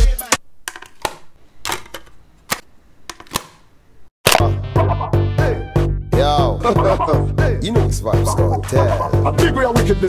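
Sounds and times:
plastic clicks and knocks: 0.6s - 3.6s
dancehall music: 4.4s - 10.0s.

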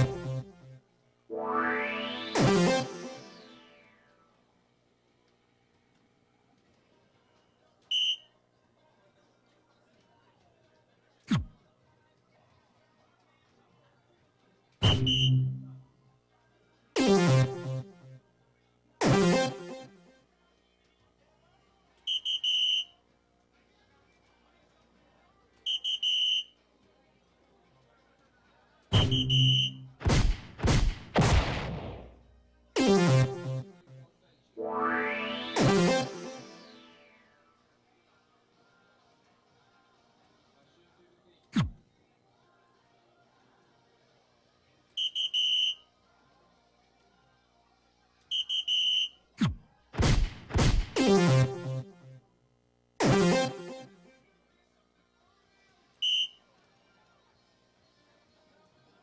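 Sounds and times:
electronic dartboard beeps: 0.0s - 0.5s, 1.3s - 3.8s, 14.8s - 15.8s, 28.9s - 30.0s, 32.8s - 33.7s, 34.6s - 37.2s, 50.7s - 51.9s, 53.0s - 54.0s
falling electronic whoosh: 1.3s - 3.9s, 34.6s - 37.2s.

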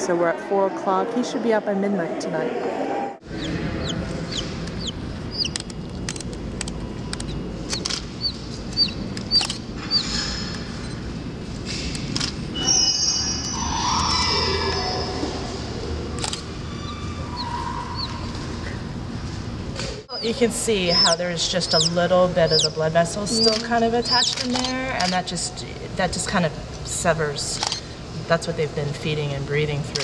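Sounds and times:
chicks peeping: 3.2s - 5.6s, 7.2s - 11.0s, 16.7s - 18.8s, 20.1s - 24.6s
steady low hum: 3.2s - 30.0s.

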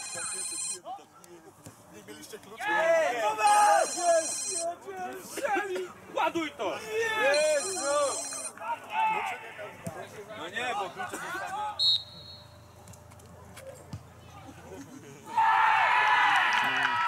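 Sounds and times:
phone ringing: 0.0s - 0.8s, 3.5s - 4.7s, 7.3s - 8.5s.

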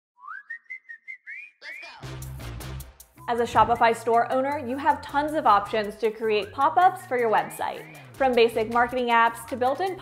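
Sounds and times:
whistle-like rising tone: 0.2s - 2.0s.

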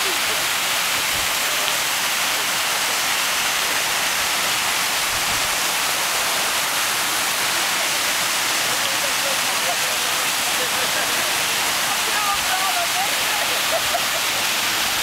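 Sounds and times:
fountain water splashing: 0.0s - 15.0s.

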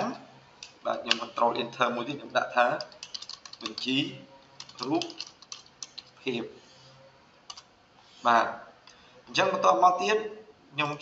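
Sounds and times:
computer keyboard typing: 2.6s - 6.2s.

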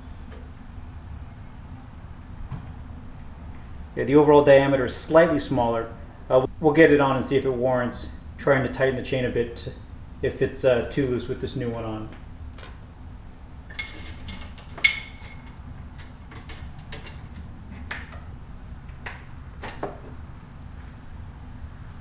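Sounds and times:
metal chain and sprocket clinking: 12.6s - 13.0s, 13.7s - 16.2s.

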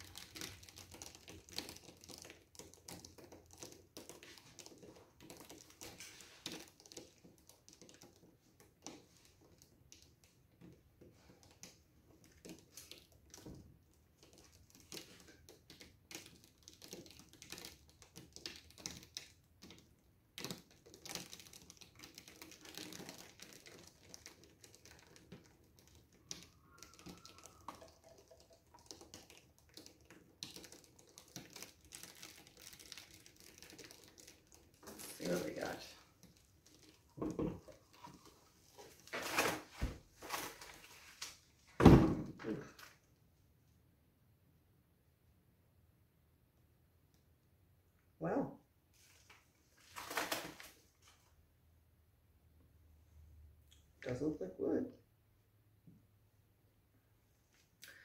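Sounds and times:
ticks and crinkling of handling: 0.0s - 41.8s, 48.9s - 51.4s.

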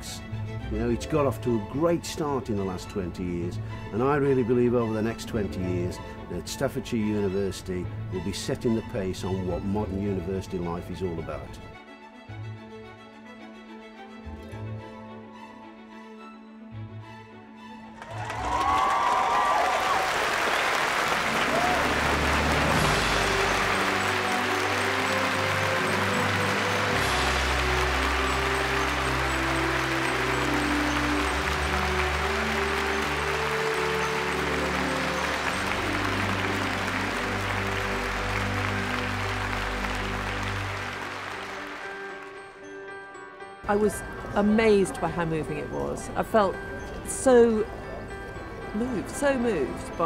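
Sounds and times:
large audience applauding: 17.9s - 42.6s
sustained low chords: 21.7s - 42.1s.

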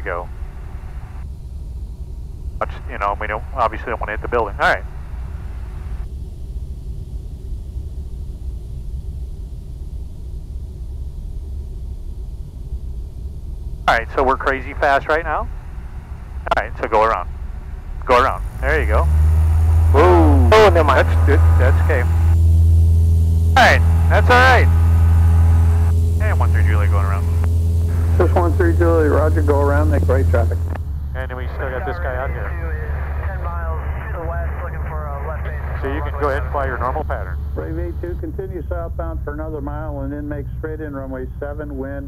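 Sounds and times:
airplane cabin rumble: 0.0s - 42.0s
person speaking: 2.6s - 4.8s, 13.9s - 15.5s, 18.1s - 19.1s, 19.9s - 22.3s, 23.6s - 24.8s, 25.7s - 40.6s
airflow over airframe: 10.0s - 41.8s.

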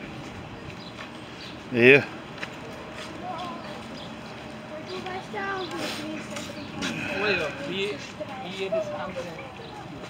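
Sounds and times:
outdoor ambience: 0.0s - 10.0s
people talking: 1.8s - 10.0s.

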